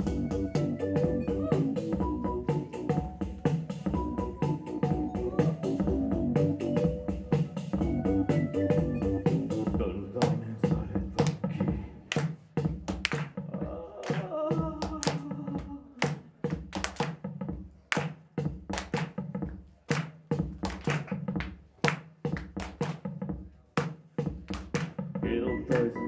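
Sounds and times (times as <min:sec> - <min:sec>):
electronic beat: 0:00.0 - 0:26.0.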